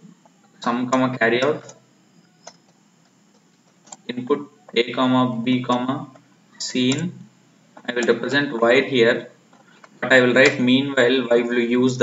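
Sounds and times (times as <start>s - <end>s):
low room noise: 0.0s - 12.0s.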